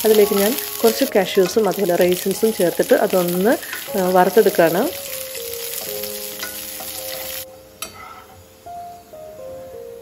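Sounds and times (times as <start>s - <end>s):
nuts frying and sizzling in a pan: 0.0s - 7.5s
wooden spatula scraping a pan: 0.6s - 8.4s.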